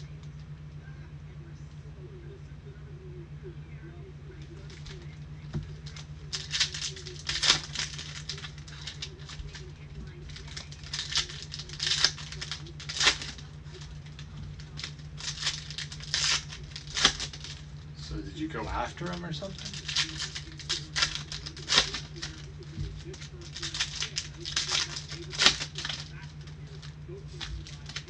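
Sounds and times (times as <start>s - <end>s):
cards shuffling: 4.4s - 17.8s, 19.1s - 28.0s
foil packs crinkling and tearing: 5.7s - 17.7s, 18.7s - 28.0s.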